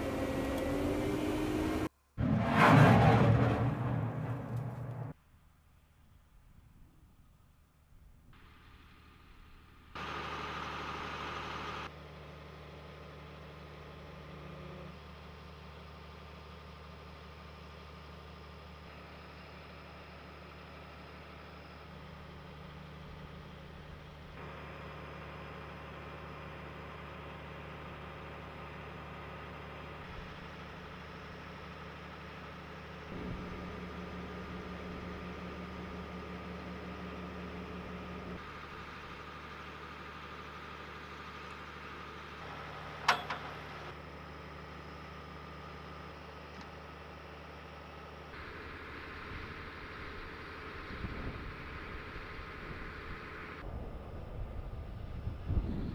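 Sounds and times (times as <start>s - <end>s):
diesel engine idling: 0.0s - 1.9s, 8.4s - 55.4s.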